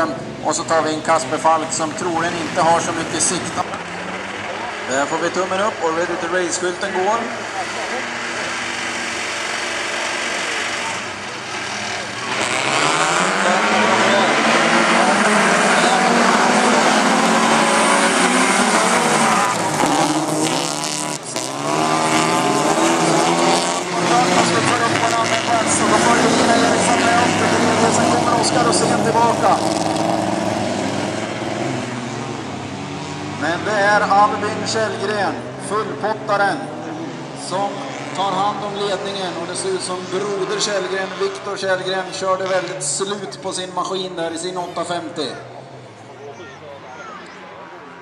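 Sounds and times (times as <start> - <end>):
race car engines revving: 0.0 - 48.0.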